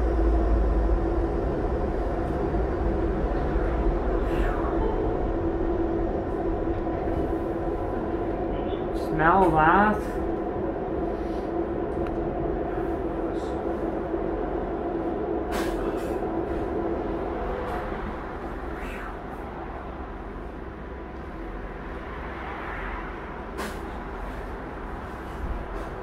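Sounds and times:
light-rail car rumbling: 0.0 - 26.0.

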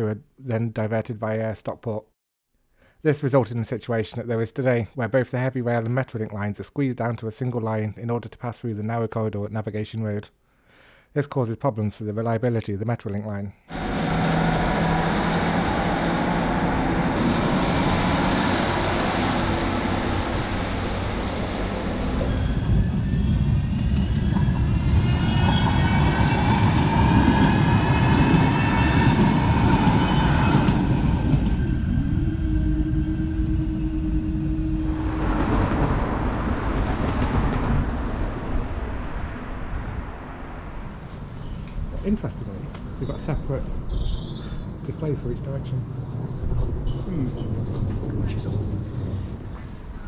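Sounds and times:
trams crossing: 13.7 - 39.9, 41.0 - 50.0
whine rising and falling: 13.7 - 43.7
steady tone: 13.7 - 48.7
diesel train passing: 13.7 - 50.0.

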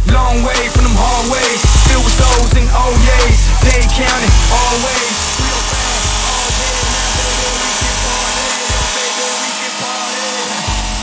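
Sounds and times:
hip-hop backing music: 0.0 - 11.0.

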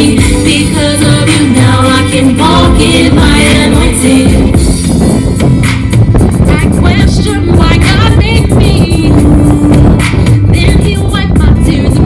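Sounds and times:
woman singing into microphone: 0.0 - 5.4, 6.4 - 12.0
backing music with steady beat: 0.0 - 12.0.

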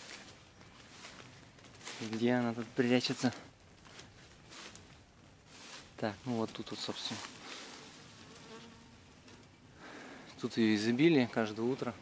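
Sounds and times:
flying insect buzzing: 7.4 - 9.5.

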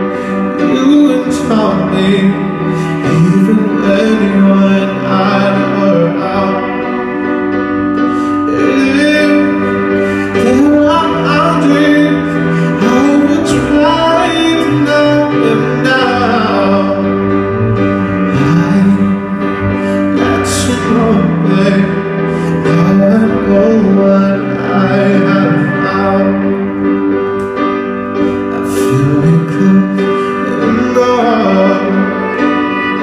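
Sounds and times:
acoustic guitar: 0.0 - 33.0
cello: 0.0 - 33.0
man singing: 0.0 - 33.0.

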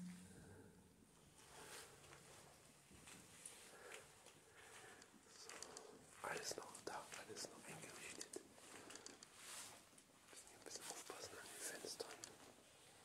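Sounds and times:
faint clicks: 3.9 - 7.2, 7.8 - 9.3, 12.0 - 12.4
person whispering: 5.3 - 8.4, 10.4 - 12.4.

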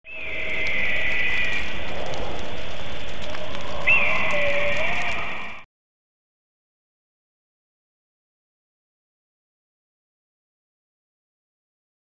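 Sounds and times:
steady rushing noise: 0.1 - 5.6.

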